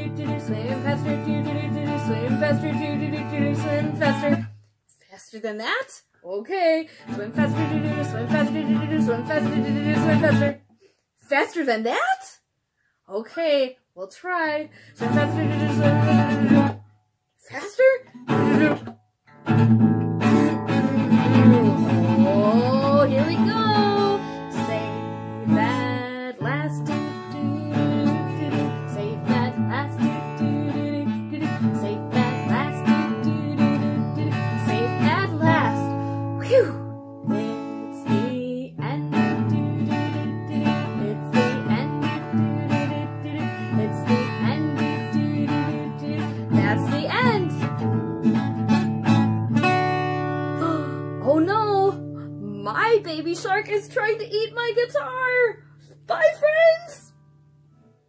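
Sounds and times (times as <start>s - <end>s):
woman singing: 0.0s - 4.5s, 6.4s - 10.6s, 14.6s - 16.8s, 20.2s - 48.8s, 50.6s - 57.1s
acoustic guitar strummed fast: 15.0s - 16.8s, 18.2s - 36.3s.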